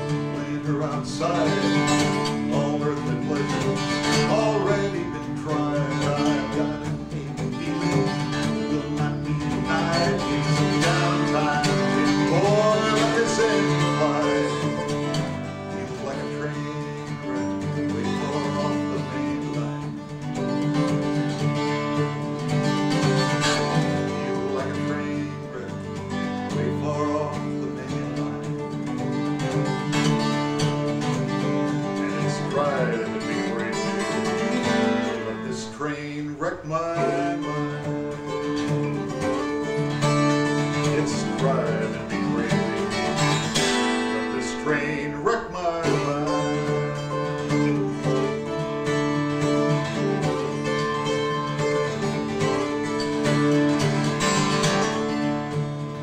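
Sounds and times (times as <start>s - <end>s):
acoustic guitar strumming and picking: 0.0s - 56.0s.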